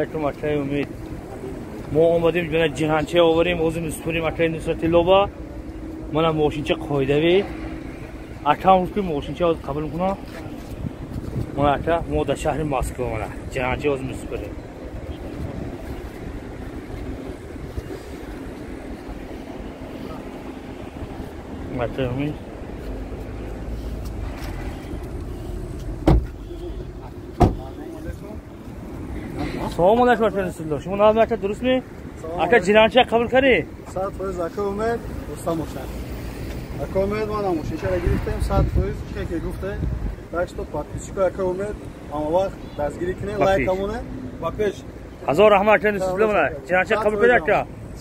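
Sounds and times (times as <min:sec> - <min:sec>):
steady low rumble: 0:00.1 - 0:30.8
sharp thumps: 0:26.0 - 0:26.4.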